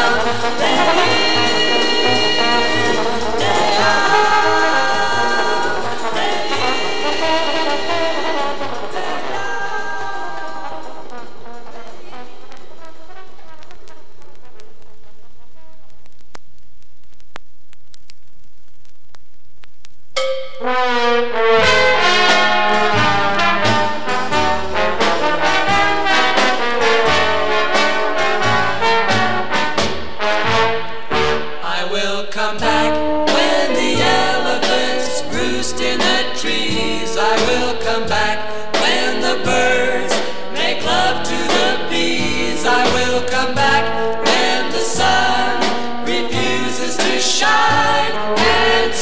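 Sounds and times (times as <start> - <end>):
jazz trombone ensemble: 0.0 - 15.9, 20.6 - 31.9, 32.6 - 49.0
faint ticks: 15.9 - 20.0.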